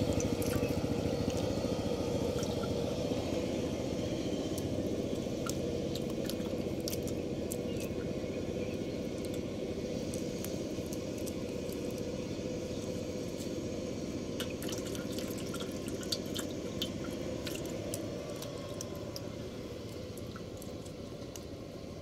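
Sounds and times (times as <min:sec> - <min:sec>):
water dripping: 0:00.0 - 0:01.6, 0:04.5 - 0:08.1, 0:14.3 - 0:21.7
fish flapping and splashing: 0:00.0 - 0:13.6, 0:14.2 - 0:22.0
steady low hum: 0:00.0 - 0:22.0.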